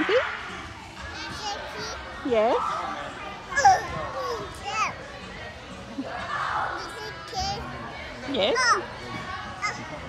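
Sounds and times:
children playing hubbub: 0.9 - 5.2, 5.9 - 10.0.

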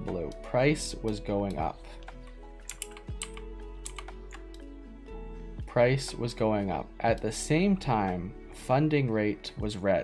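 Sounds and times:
soft background music: 0.0 - 10.0
computer keyboard clicks: 2.0 - 4.6.

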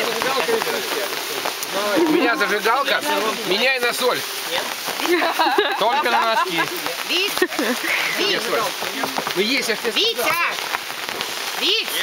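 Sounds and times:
rain pattering on a tarp: 0.0 - 12.0.

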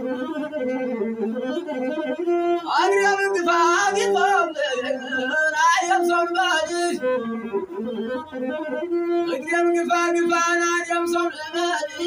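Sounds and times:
bowed one-string fiddle: 0.0 - 12.0
man singing: 2.4 - 8.3, 9.0 - 12.0.

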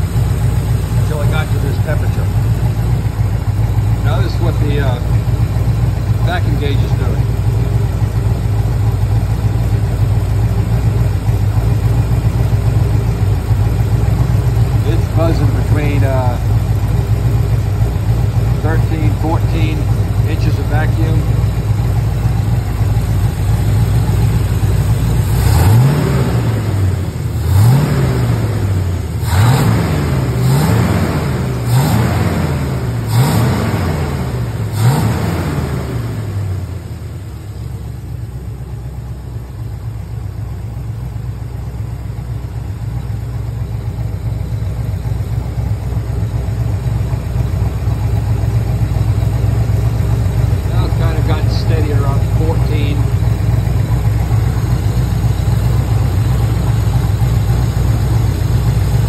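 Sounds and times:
car engine idling: 0.0 - 59.0.

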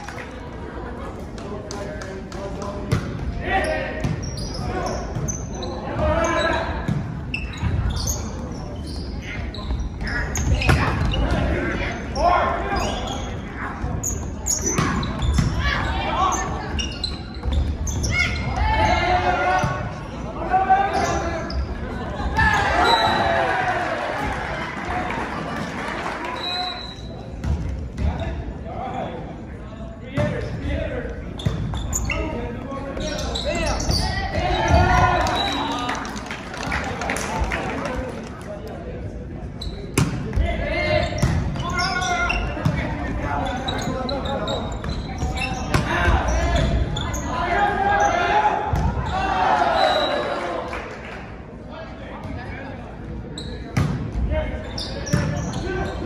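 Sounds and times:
players and spectators shouting: 18.0 - 26.9, 33.0 - 36.1, 45.3 - 50.8.

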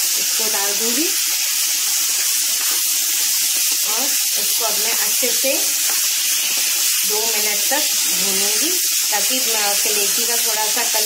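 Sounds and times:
meat sizzling in hot oil: 0.0 - 11.0.

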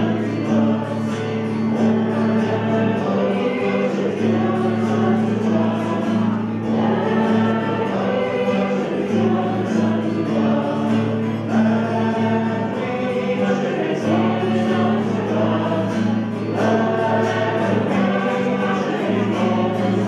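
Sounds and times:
acoustic guitar: 0.0 - 20.0
group singing in unison: 0.0 - 20.0.

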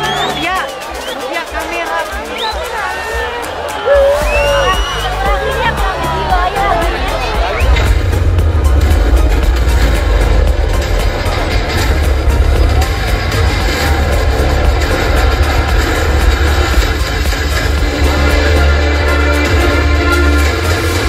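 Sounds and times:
live concert music with heavy bass: 0.0 - 21.0.

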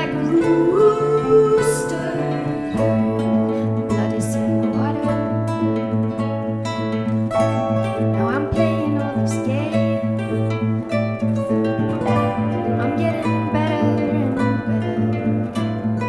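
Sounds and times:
plucked guitar notes: 0.0 - 16.0.

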